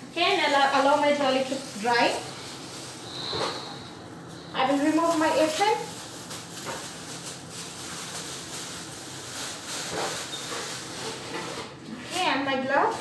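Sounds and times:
thin plastic rustling and crinkling: 0.0 - 13.0.

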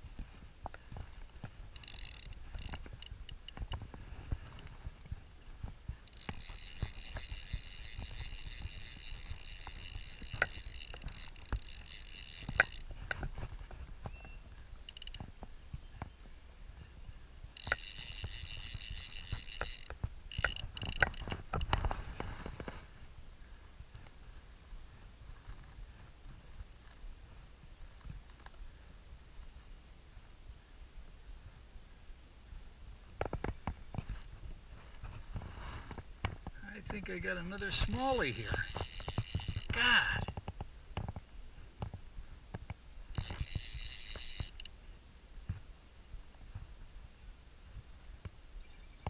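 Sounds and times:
fishing reel ratchet buzzing: 0.9 - 15.4, 17.5 - 22.7, 36.6 - 40.6, 43.1 - 44.8.

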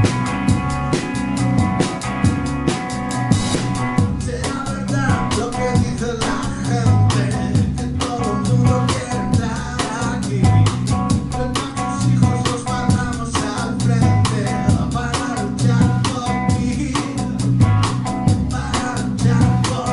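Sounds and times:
drum kit beat: 0.0 - 19.9
electric guitar: 0.0 - 19.9.

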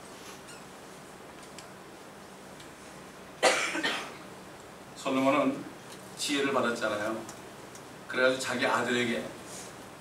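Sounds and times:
loud cough: 3.4 - 4.2.

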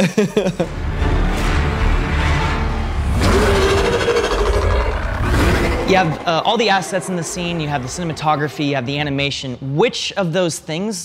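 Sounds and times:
dramatic music: 0.1 - 10.5
heavy low rumble: 1.0 - 9.7
noisy swell: 2.2 - 10.1.

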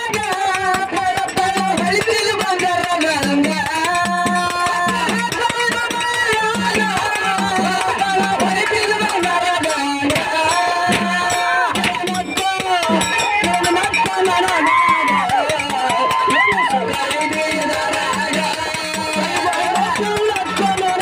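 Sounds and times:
rhythmic drumming: 0.0 - 21.0.

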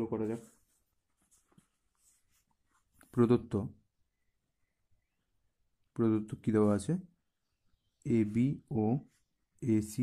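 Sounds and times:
man speaking: 0.0 - 0.7, 3.0 - 3.8, 5.9 - 7.2, 8.0 - 10.0.

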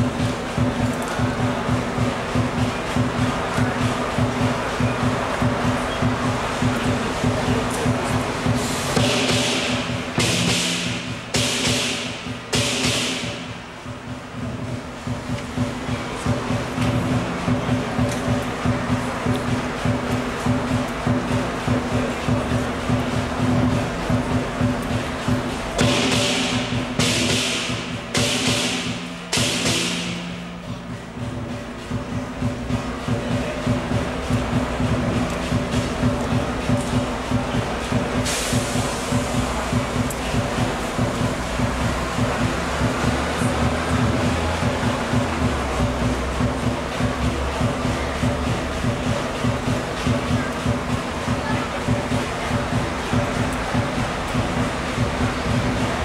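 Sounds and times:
big drum beating fast rhythm: 0.0 - 56.0
clashing cymbals: 0.0 - 56.0
gong: 8.4 - 13.5, 21.0 - 38.1.

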